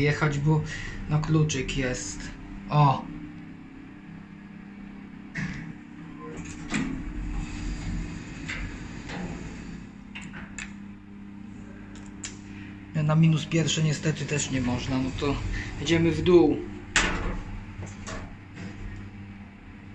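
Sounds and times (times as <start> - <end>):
lift car humming: 0.0 - 19.9
mechanism clicks and knocks: 16.9 - 18.4.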